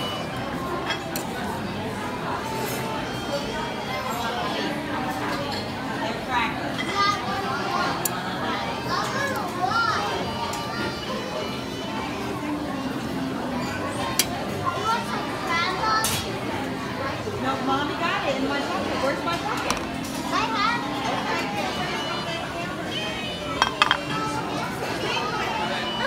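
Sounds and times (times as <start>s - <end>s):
dining-room chatter: 0.0s - 26.0s
children's voices: 6.9s - 11.8s, 13.7s - 16.4s, 20.2s - 23.5s.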